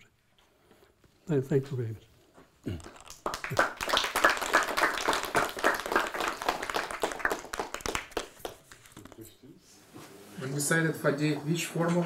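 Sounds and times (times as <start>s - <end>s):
audience applauding: 2.9s - 8.8s.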